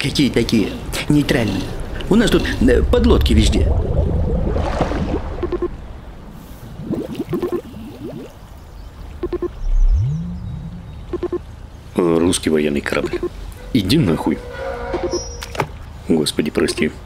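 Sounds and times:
water bubbling and gurgling: 0.6 - 12.1
low whine rising in pitch: 9.3 - 11.6.

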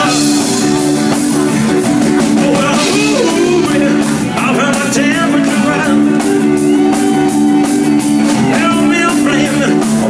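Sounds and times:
live rock band playing: 0.0 - 10.0
man singing: 2.2 - 6.7, 8.2 - 10.0.

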